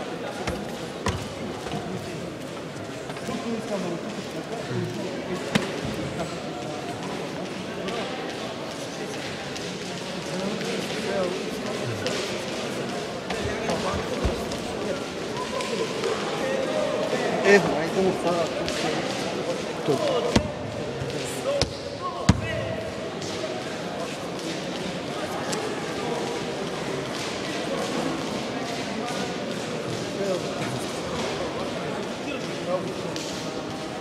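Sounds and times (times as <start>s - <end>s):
echoing chatter of many voices: 0.0s - 34.0s.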